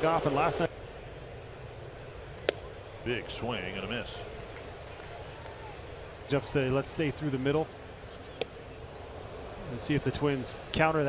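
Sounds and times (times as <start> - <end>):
crowd hum: 0.0 - 11.0.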